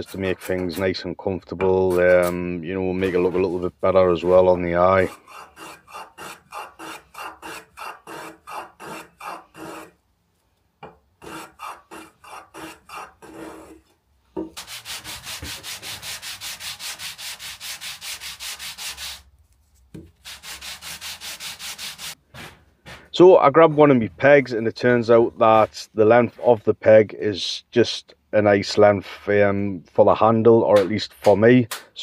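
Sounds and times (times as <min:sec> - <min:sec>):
hand tool rubbing wood: 0:00.0 - 0:01.0, 0:01.7 - 0:10.0, 0:11.2 - 0:13.9, 0:14.6 - 0:23.1.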